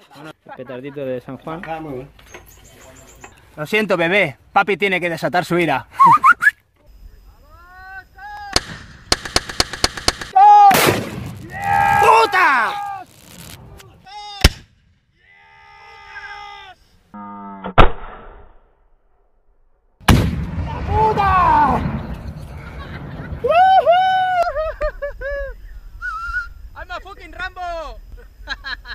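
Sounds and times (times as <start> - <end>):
rocket launcher blasts: 8.5 - 12.0, 17.7 - 18.7, 20.0 - 23.4
people shouting: 10.4 - 13.1, 13.7 - 14.5, 15.2 - 16.9, 20.7 - 21.8, 23.4 - 24.6.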